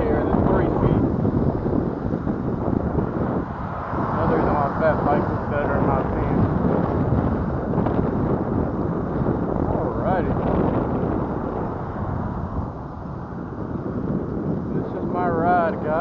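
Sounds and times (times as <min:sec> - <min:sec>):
wind on microphone: 0:00.0 - 0:16.0.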